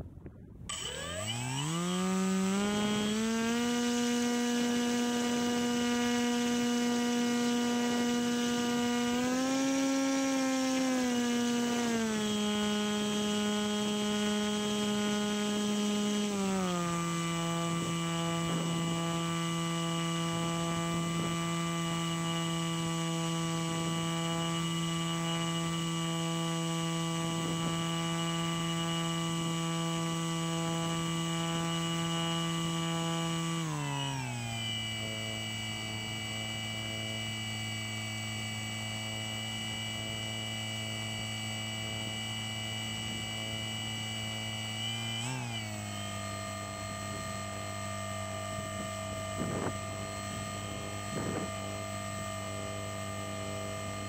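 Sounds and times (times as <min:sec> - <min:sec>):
paramotor engine hum: 0:00.0 - 0:54.0.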